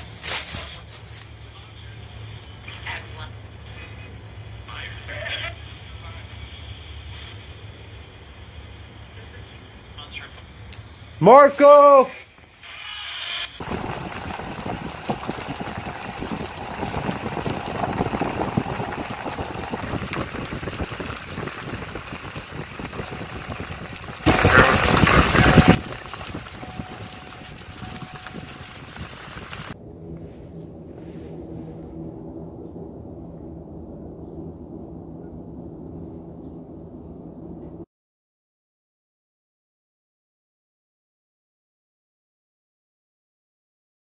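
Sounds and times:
low steady hum: 13.6 - 37.8
wind buffeting microphone: 13.6 - 37.8.

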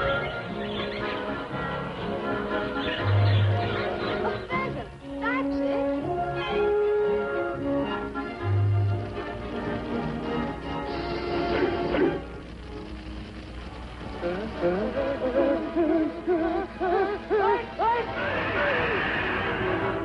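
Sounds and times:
orchestral cartoon music: 0.0 - 12.4.

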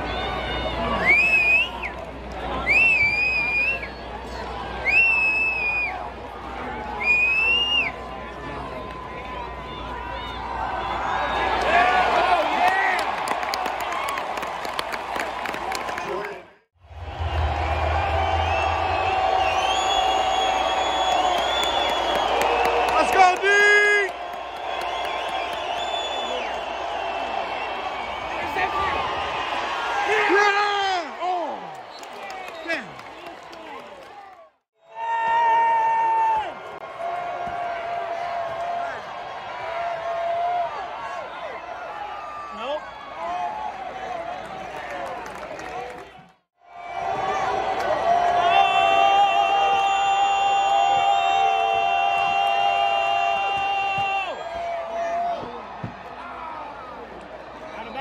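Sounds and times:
stadium crowd cheering: 0.0 - 58.0.

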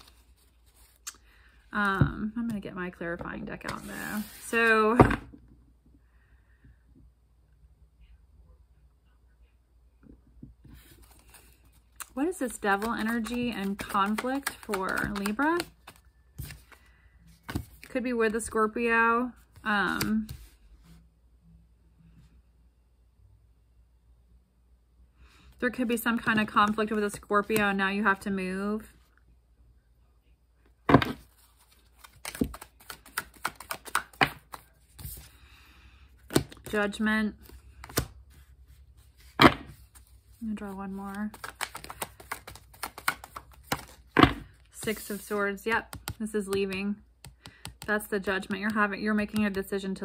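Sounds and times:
cards being shuffled: 0.0 - 1.2, 3.6 - 4.8, 10.8 - 18.5, 19.5 - 20.6, 30.9 - 35.4, 36.2 - 49.6
cards clicking as flicked: 12.7 - 16.0, 41.3 - 43.9.

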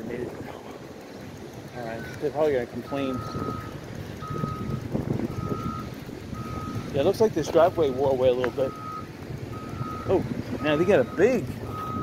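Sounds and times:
low rumble: 2.6 - 7.4
reversing alarm beeping: 2.8 - 12.0.

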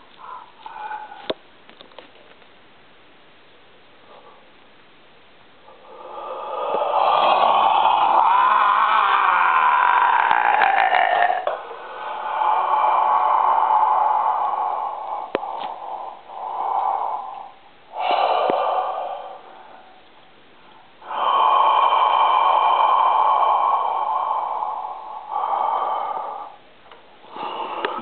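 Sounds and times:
man breathing loudly: 5.7 - 28.0.

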